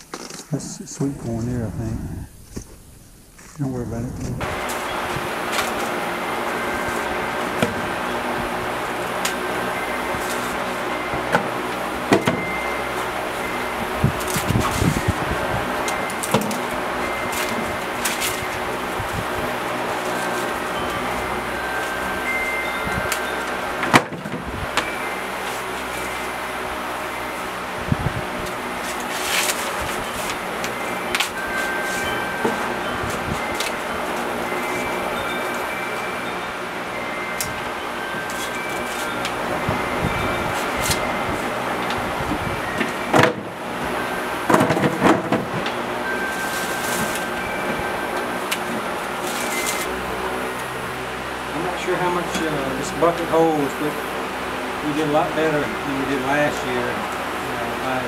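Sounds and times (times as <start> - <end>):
corn husks rustling and tearing: 14.1 - 22.0, 28.4 - 35.7, 46.3 - 47.4, 48.4 - 50.1.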